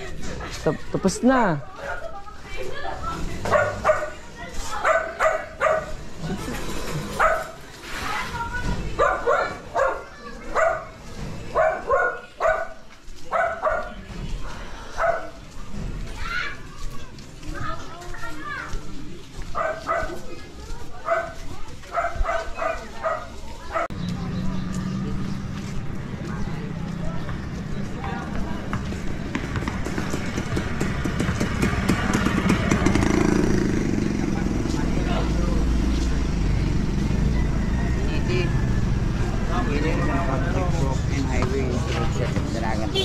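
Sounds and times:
people's voices: 0:00.0 - 0:43.0
dog barking: 0:03.4 - 0:04.2, 0:04.8 - 0:06.0, 0:07.2 - 0:07.6, 0:09.0 - 0:14.0, 0:15.0 - 0:15.4, 0:19.6 - 0:20.2, 0:21.0 - 0:24.0.

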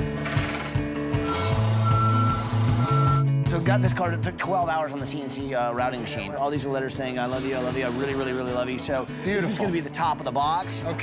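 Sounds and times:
background music: 0:00.0 - 0:11.0
truck reversing alarm beeping: 0:01.2 - 0:03.4.

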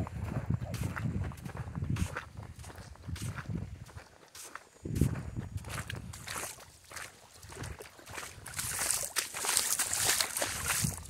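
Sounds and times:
footsteps on sand: 0:00.0 - 0:11.0.

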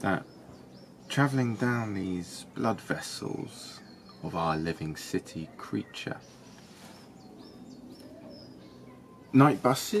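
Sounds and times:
outdoor background noise: 0:00.0 - 0:10.0
small bird chirping: 0:00.0 - 0:10.0.

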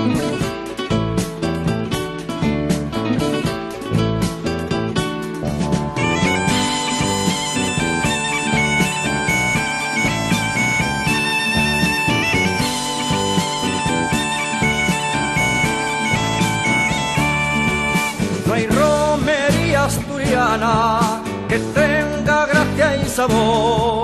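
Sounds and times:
drums: 0:00.0 - 0:24.0
bagpipe melody: 0:05.9 - 0:18.5
bagpipe drone: 0:06.0 - 0:18.4
person singing: 0:14.4 - 0:24.0.

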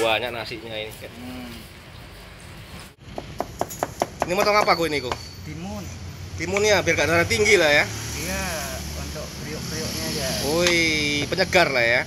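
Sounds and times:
cleaver chopping on wooden block: 0:03.1 - 0:05.2.

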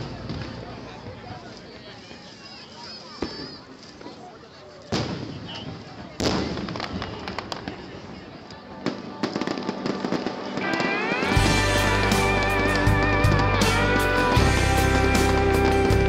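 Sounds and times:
firework crackling: 0:04.8 - 0:16.0
firework bangs: 0:04.9 - 0:08.0, 0:08.7 - 0:16.0
music: 0:08.8 - 0:16.0.

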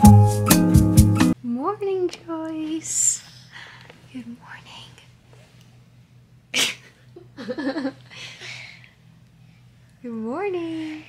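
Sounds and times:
person laughing: 0:06.6 - 0:08.1.

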